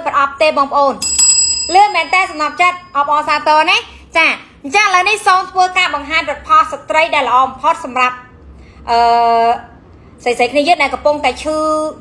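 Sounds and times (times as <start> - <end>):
bright bell-like ding: 1.0 - 3.2.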